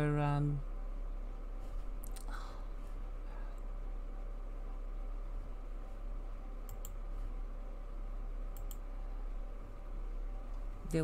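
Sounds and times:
steady low hum: 0.0 - 11.0
computer mouse double-clicking: 6.7 - 7.0, 8.5 - 8.8.

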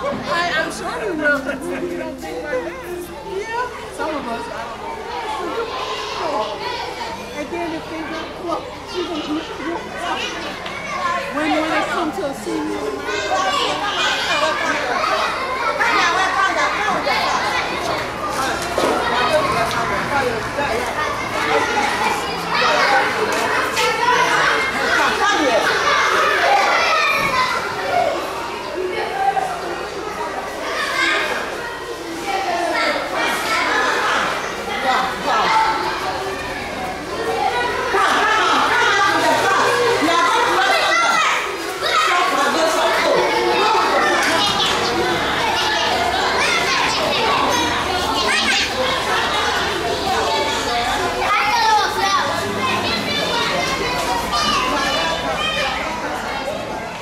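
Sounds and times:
children chattering and calling out: 0.0 - 57.0.

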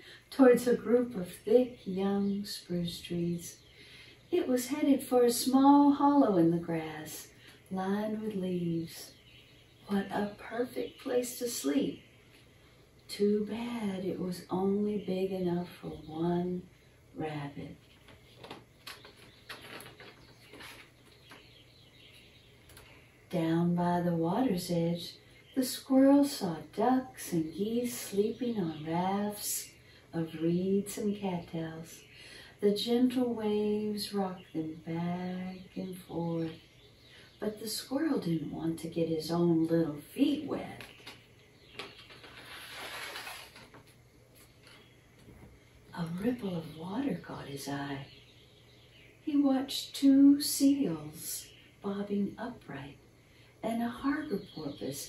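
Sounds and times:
paper page rustling: 18.0 - 21.4, 41.8 - 44.8.

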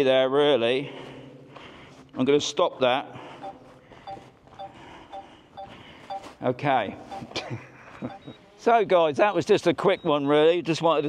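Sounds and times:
short electronic warning beeps: 3.4 - 6.4, 7.0 - 7.4, 8.0 - 8.5.

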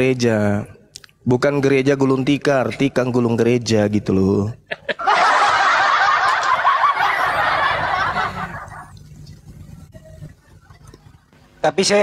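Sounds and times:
crowd laughing: 4.7 - 9.0.

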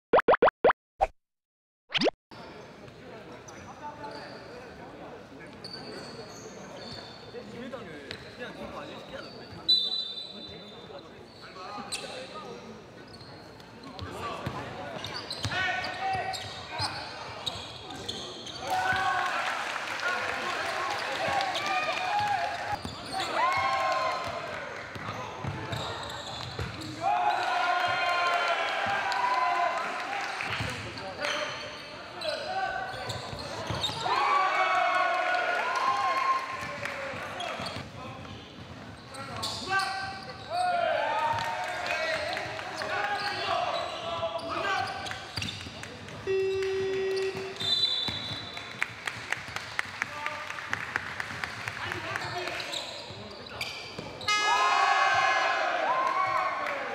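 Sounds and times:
electronic beeps: 0.1 - 0.5
sneaker squeaks: 5.5 - 7.4, 8.1 - 18.7, 22.7 - 23.4, 24.9 - 27.0, 31.0 - 34.1, 37.4 - 40.7, 42.8 - 48.6, 52.2 - 54.6.

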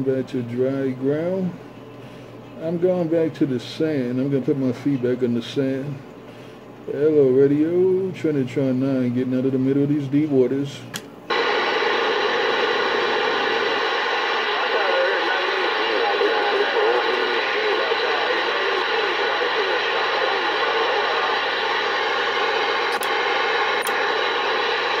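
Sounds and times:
radio static hiss: 0.0 - 25.0
garbled radio voices: 11.3 - 25.0
short clicks: 22.9 - 23.2.

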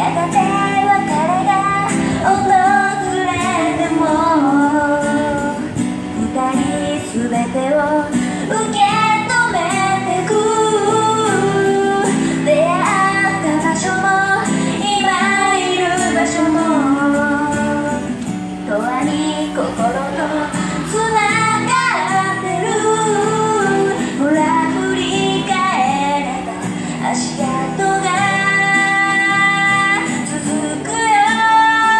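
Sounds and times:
acoustic guitar: 0.0 - 31.9
woman singing into microphone: 0.0 - 31.9.

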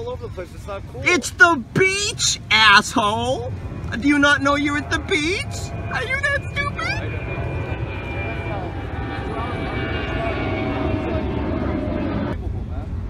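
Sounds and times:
engine drone with falling tones: 0.0 - 13.0.

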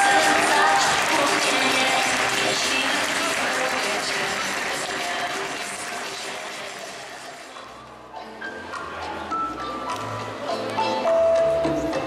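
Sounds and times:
audience applause: 0.0 - 7.6.

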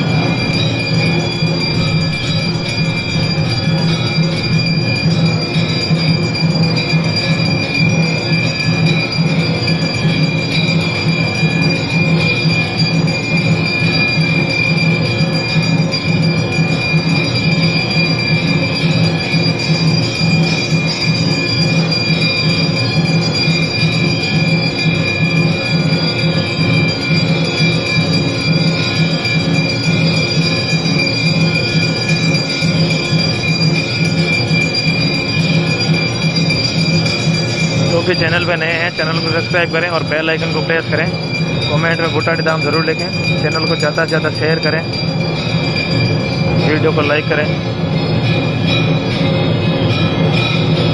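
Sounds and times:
temple bells ringing: 0.0 - 50.9.

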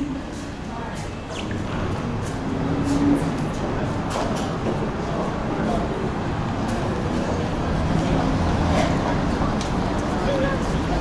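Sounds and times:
rumble of passing vehicles: 0.0 - 11.0.

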